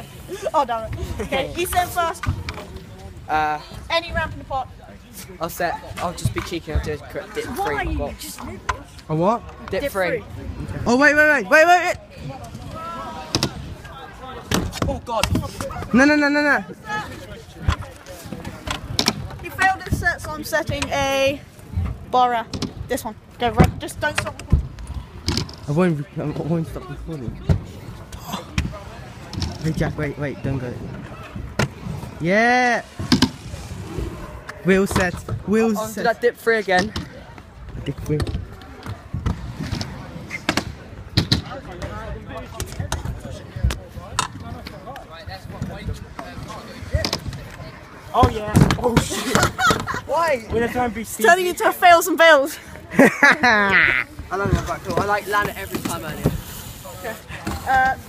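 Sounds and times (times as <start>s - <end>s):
scooter wheels rolling on concrete: 0.0s - 11.1s, 16.6s - 58.0s.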